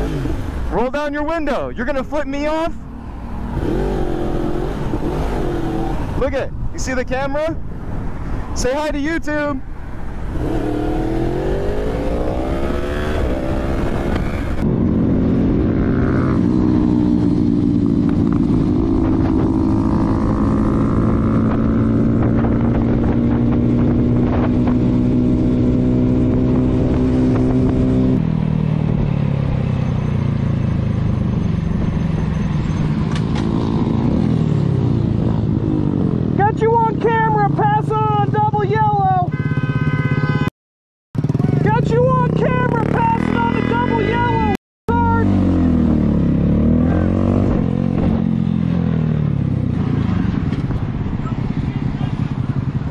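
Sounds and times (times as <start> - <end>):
motorcycle engine revving: 0.0 - 0.8, 3.3 - 6.2, 10.1 - 36.5, 41.2 - 52.9
person's voice: 36.4 - 39.3, 41.3 - 45.4.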